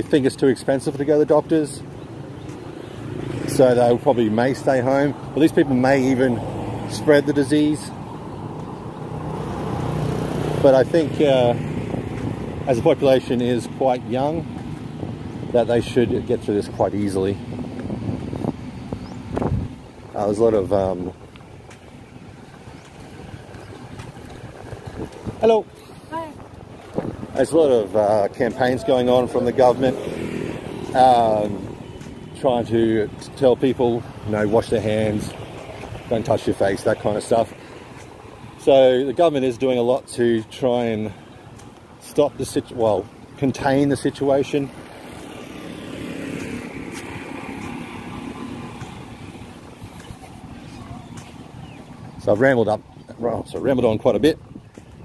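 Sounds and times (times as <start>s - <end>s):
faint distant traffic: 0.0s - 55.0s
motor vehicle passing: 0.0s - 55.0s
wind rumble on microphone: 7.9s - 33.3s, 44.7s - 55.0s.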